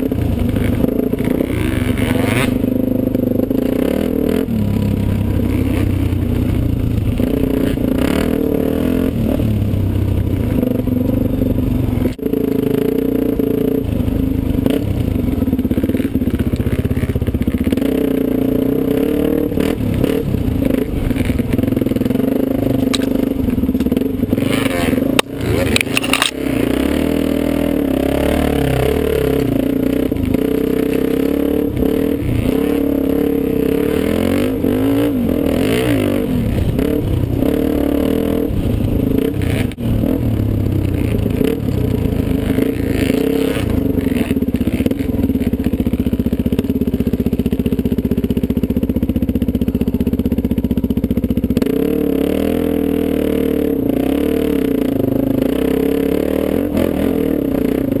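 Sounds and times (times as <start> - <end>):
dirt bike engine revving: 0.0 - 58.0.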